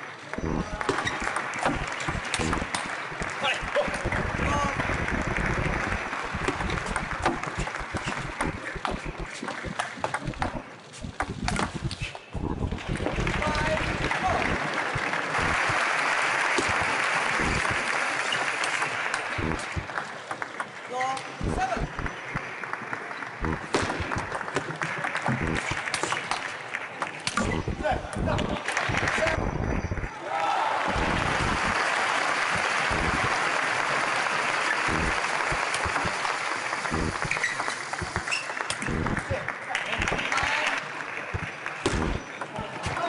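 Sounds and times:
people clapping: 0:00.0 - 0:42.8
crowd noise: 0:00.0 - 0:43.0.

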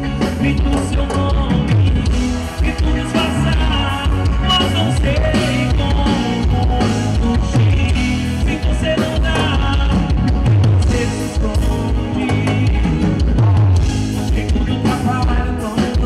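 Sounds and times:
live band playing: 0:00.0 - 0:16.0
man singing into microphone: 0:00.0 - 0:16.0.

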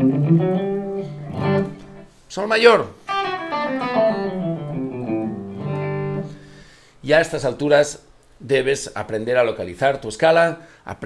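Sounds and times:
electric guitar notes: 0:00.0 - 0:02.1, 0:03.0 - 0:06.7.

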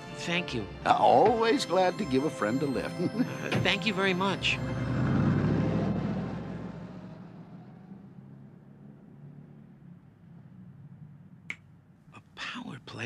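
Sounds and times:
car engine pulling away: 0:01.4 - 0:12.1.

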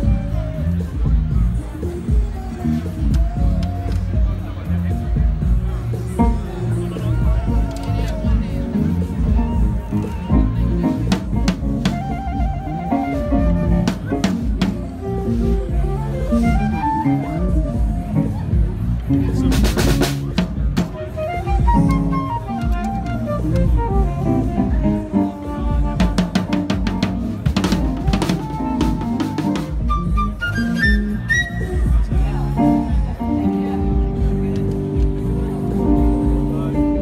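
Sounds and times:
drum kit playing: 0:00.0 - 0:37.0.

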